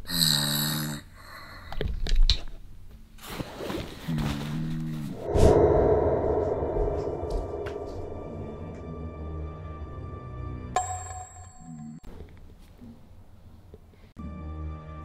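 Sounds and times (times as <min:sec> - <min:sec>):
recorded snoring from phone: 0:00.1 - 0:01.4
background music: 0:05.3 - 0:12.1, 0:14.2 - 0:15.0.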